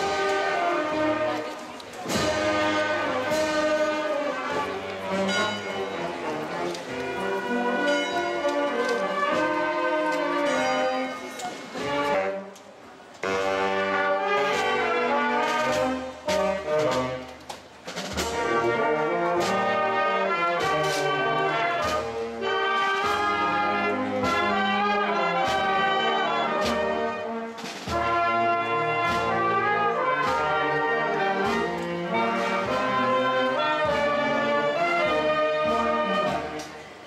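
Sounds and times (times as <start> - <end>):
marching brass band playing: 0.0 - 37.0.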